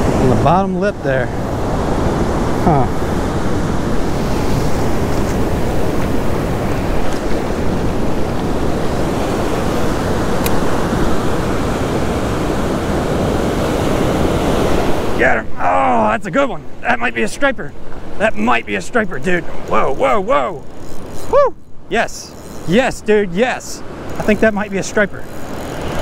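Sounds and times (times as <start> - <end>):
ocean surf breaking: 0.0 - 26.0
wind on microphone: 1.3 - 15.2.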